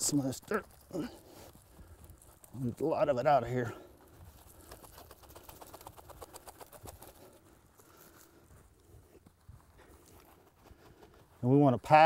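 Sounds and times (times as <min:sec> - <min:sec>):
soil pattering and crackling: 0:00.0 - 0:12.0.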